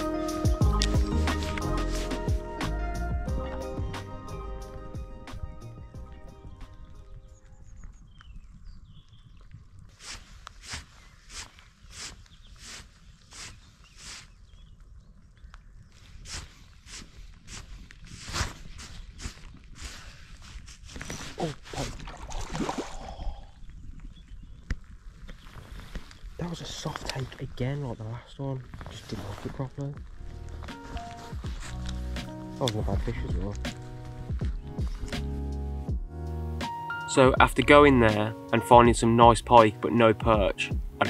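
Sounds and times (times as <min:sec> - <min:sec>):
background music: 0:00.0 - 0:07.5, 0:29.4 - 0:41.0.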